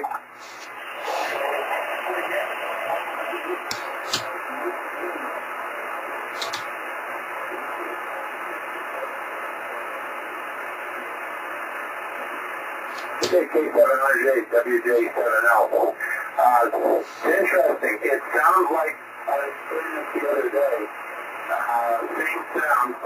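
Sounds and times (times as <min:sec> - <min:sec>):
radio receiver hiss: 0:00.0 - 0:23.0
clicks: 0:03.7 - 0:04.4, 0:06.4 - 0:06.7.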